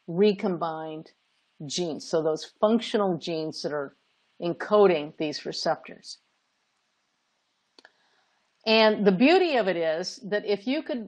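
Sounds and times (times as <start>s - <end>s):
faint hiss: 0.0s - 10.8s.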